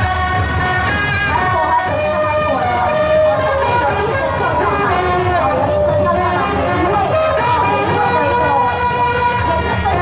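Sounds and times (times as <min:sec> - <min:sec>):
bass drum: 0:00.0 - 0:10.0
trumpets and trombones playing: 0:00.0 - 0:10.0.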